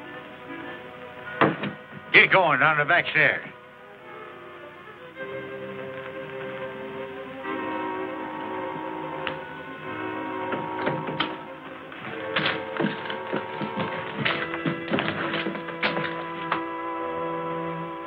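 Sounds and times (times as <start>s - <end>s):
orchestral music with held chords: 0.0s - 18.0s.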